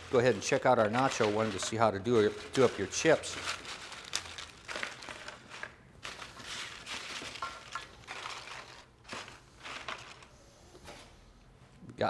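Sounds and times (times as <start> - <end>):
tortilla chips rustling and clicking: 0.0 - 10.3.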